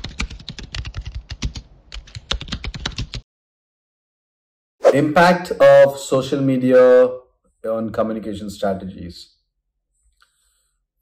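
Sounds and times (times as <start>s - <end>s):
computer keyboard typing: 0.0s - 3.2s.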